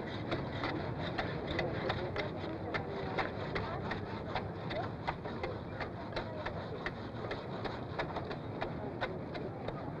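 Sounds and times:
murmur of street crowd: 0:00.0 - 0:10.0.

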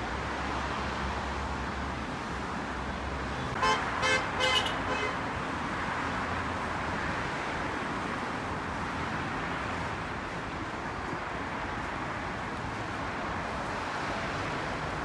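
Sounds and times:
road traffic noise: 0:00.0 - 0:15.0
vehicle horn tooting: 0:03.6 - 0:05.2.

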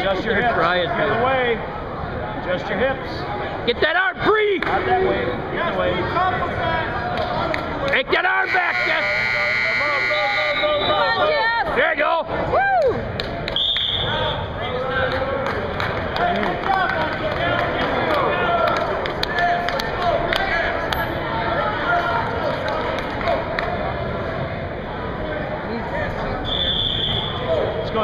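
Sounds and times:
people talking in echoing gym: 0:00.0 - 0:28.0
referee's whistle blasts: 0:08.4 - 0:11.1, 0:13.6 - 0:14.5, 0:26.4 - 0:27.5.

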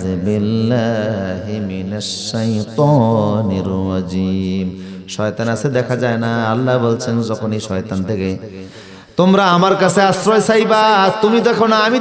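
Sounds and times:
man chanting through a microphone: 0:00.0 - 0:12.0.

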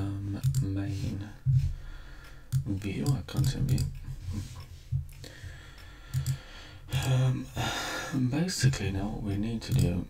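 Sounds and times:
computer clicks: 0:00.4 - 0:00.7, 0:02.2 - 0:07.3, 0:09.3 - 0:10.0.

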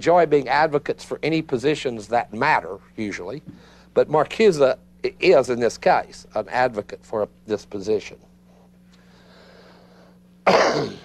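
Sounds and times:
faint steady hum: 0:00.0 - 0:11.0
man clearing his throat: 0:10.4 - 0:11.0.

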